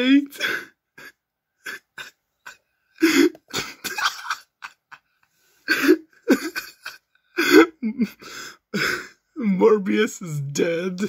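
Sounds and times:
person laughing hard: 1.0s - 9.0s.

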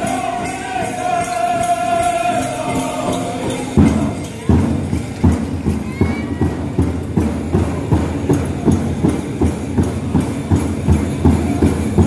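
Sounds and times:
large drum steady beat: 0.0s - 12.0s.

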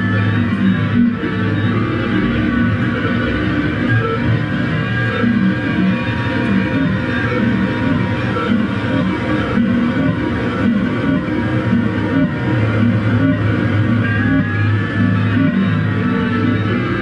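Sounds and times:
distorted electric bass noise jam: 0.0s - 17.0s.

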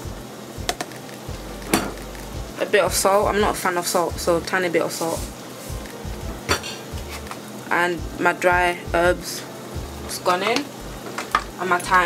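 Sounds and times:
stovetop hiss: 0.0s - 12.0s
kitchenware clink: 6.5s - 6.9s.

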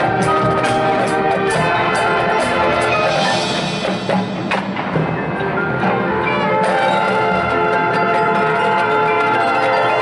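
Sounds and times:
marching band playing: 0.0s - 10.0s
ringing mallet percussion: 0.0s - 10.0s.

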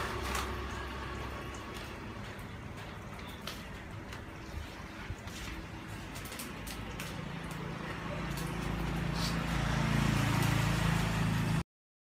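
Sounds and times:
low motor hum: 0.0s - 11.6s
rough noise: 4.5s - 11.6s.

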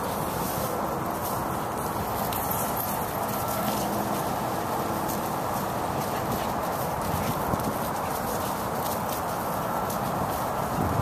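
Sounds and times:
dog paws on wood chips: 0.0s - 11.0s
faint rustles and ticks: 0.0s - 11.0s
footsteps on wood-chip mulch: 0.0s - 11.0s.

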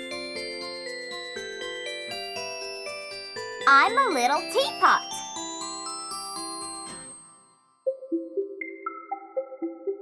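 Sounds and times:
children's song with bell-like notes: 0.0s - 10.0s.

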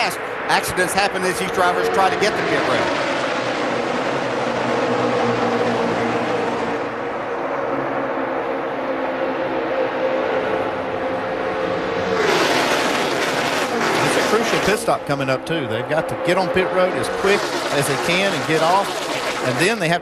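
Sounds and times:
race car engines droning: 0.0s - 20.0s
race cars rushing past: 0.0s - 20.0s.

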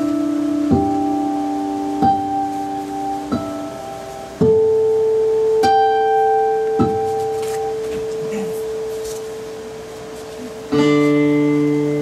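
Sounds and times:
acoustic guitar note ringing: 0.0s - 12.0s.

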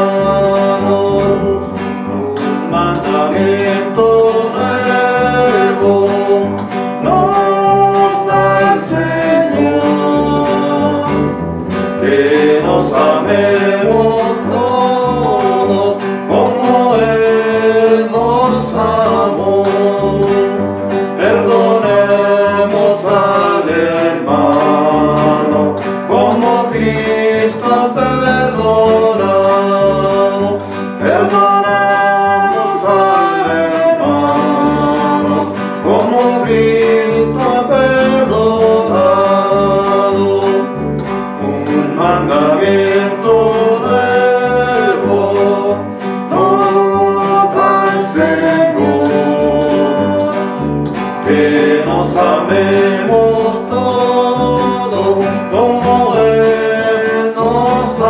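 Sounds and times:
acoustic guitar strumming: 0.0s - 58.0s
double bass plucked: 0.0s - 58.0s
person singing: 0.0s - 58.0s.

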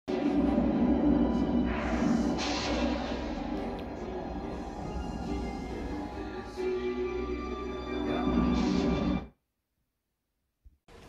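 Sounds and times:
film title music from television: 0.1s - 9.4s.

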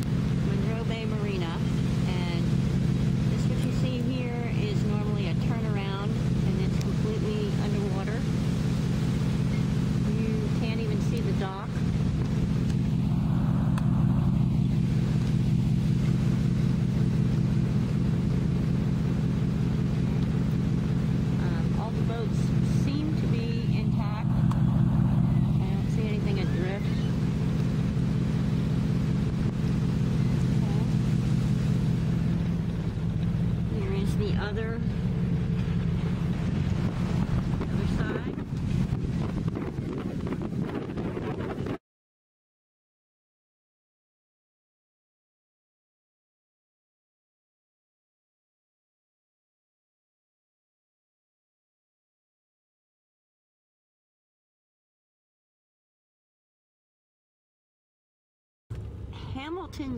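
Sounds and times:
vehicle engine idling: 0.0s - 41.8s, 58.7s - 59.9s.

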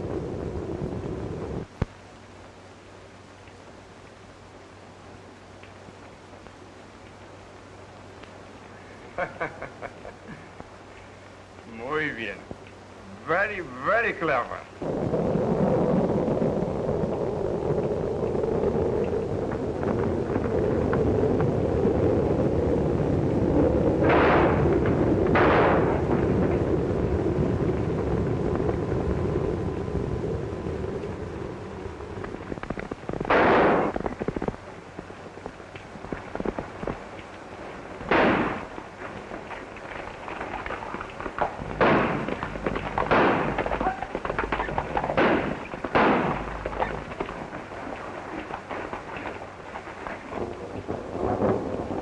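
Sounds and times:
noisy rumble: 0.0s - 52.0s
gunshots with short echo: 24.0s - 26.1s, 33.3s - 34.0s, 38.1s - 38.7s, 41.6s - 47.0s.

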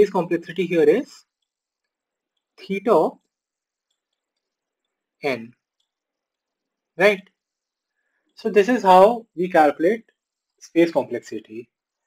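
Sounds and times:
man speaking: 0.0s - 1.2s, 2.6s - 3.2s, 5.2s - 5.6s, 7.0s - 7.3s, 8.4s - 10.0s, 10.6s - 11.6s
faint ticks: 3.2s - 5.1s.

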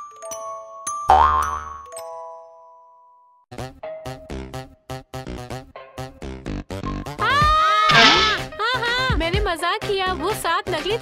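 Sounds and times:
cartoon thump with springy boing: 7.9s - 8.4s.

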